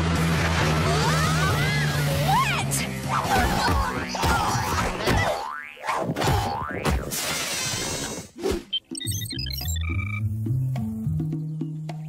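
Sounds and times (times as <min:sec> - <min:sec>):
cartoon boing sound effect: 0:03.4 - 0:07.1.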